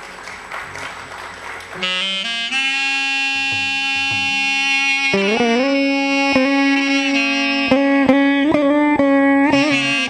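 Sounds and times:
melodic instrument holding long note: 1.8 - 10.0.

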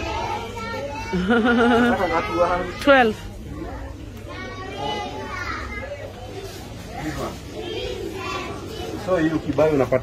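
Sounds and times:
indistinct background voices: 0.0 - 10.0.

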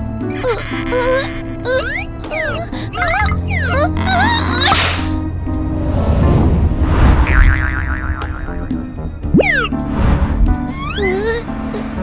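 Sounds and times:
background music: 0.0 - 12.0
cartoon whoosh: 1.8 - 5.2.

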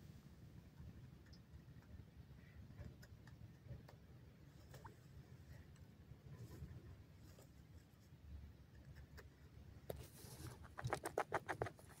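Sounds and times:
soft rustle: 4.4 - 12.0.

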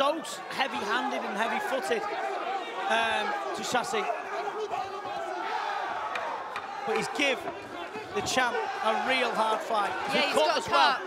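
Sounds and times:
arena crowd shouting: 0.0 - 11.0.

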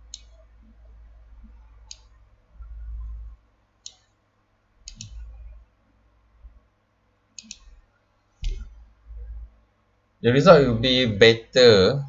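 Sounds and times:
computer mouse button clicking: 4.9 - 5.3, 7.4 - 7.7.

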